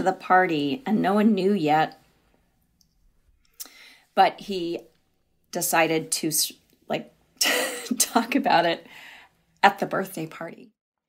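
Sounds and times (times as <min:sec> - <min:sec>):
soft breath: 0:03.4 - 0:04.2, 0:08.8 - 0:09.4.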